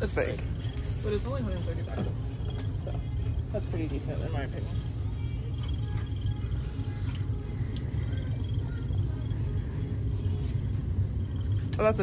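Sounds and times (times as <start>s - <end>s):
faint background music: 0.0s - 12.0s
low rumble of shop noise: 0.0s - 12.0s.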